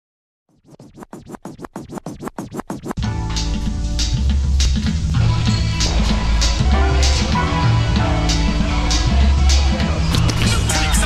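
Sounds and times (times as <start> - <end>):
quick scratch-like swishes: 0.5 - 3.0
hip-hop beat with heavy bass: 1.4 - 11.0.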